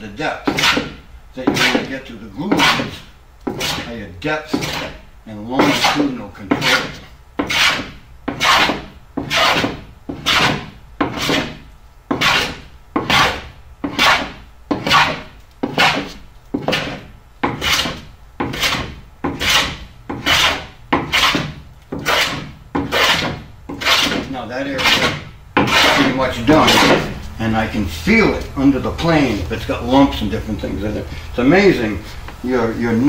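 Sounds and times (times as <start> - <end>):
hand plane shaving wood: 0.5 - 1.9, 2.5 - 3.9, 4.5 - 5.0, 5.6 - 27.1.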